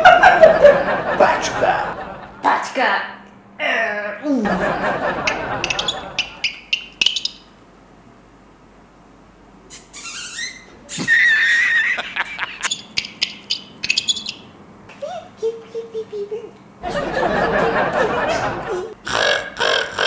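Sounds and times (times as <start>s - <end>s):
mouth-made birdsong imitation: 5.3s - 7.5s, 9.7s - 11.8s, 12.6s - 16.4s.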